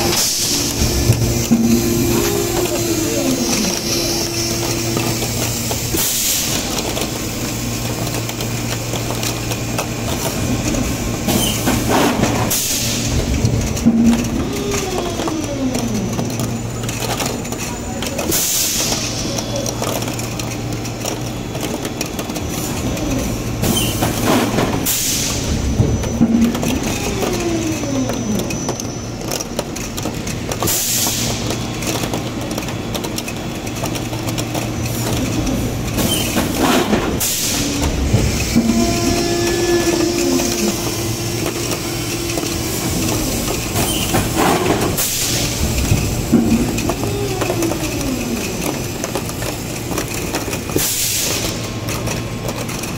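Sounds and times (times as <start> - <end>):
hydraulic machine hum: 0.0 - 52.9.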